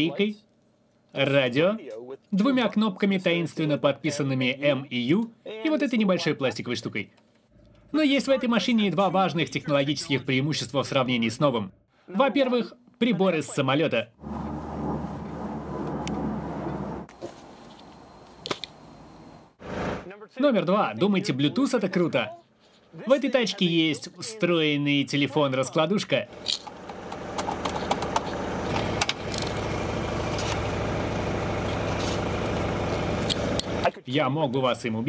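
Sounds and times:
low engine drone: 0:14.2 - 0:17.1, 0:26.3 - 0:33.9.

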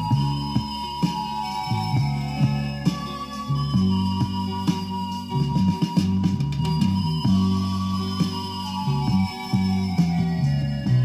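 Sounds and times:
instrumental pop music from vinyl: 0:00.0 - 0:11.0.

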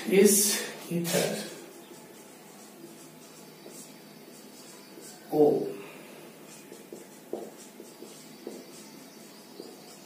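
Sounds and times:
marker scratching on whiteboard: 0:00.8 - 0:10.0
marker tip tapping: 0:06.8 - 0:08.9.

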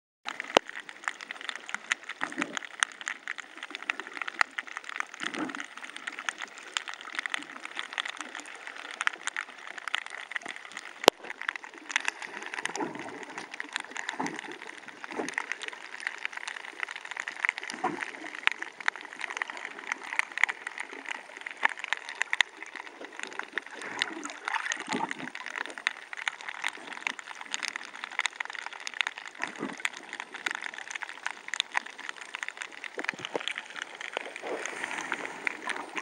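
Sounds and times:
fine crackle of small clicks: 0:00.3 - 0:36.0
water gurgling and sloshing: 0:00.3 - 0:36.0.

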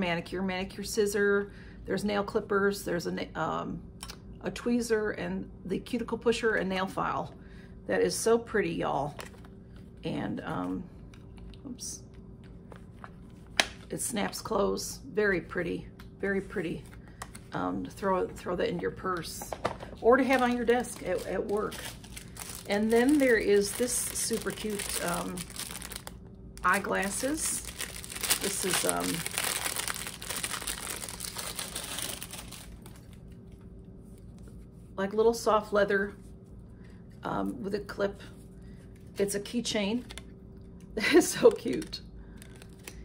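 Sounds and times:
packaging crinkling: 0:19.5 - 0:34.6, 0:41.5 - 0:43.0.

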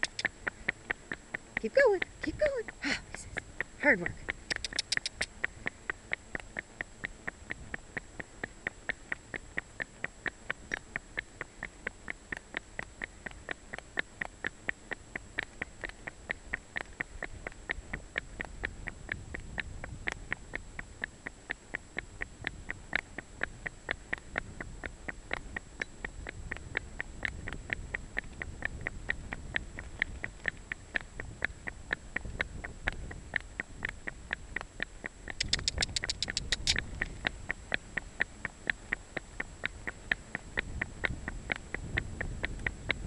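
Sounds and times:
horse hooves clopping on road: 0:00.0 - 0:43.0.

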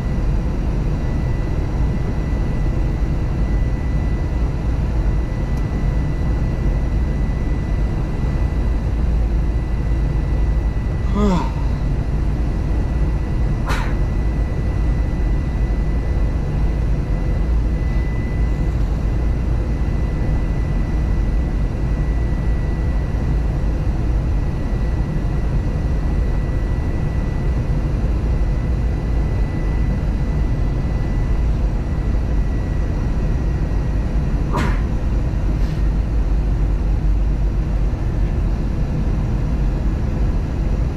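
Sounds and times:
airliner cabin rumble: 0:00.0 - 0:20.6, 0:29.4 - 0:40.9
faint high whine: 0:00.0 - 0:23.2.

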